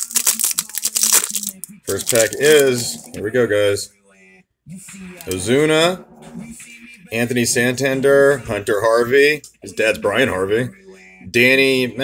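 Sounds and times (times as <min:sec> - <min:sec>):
wrapper crinkling and tearing: 0:00.0 - 0:03.2.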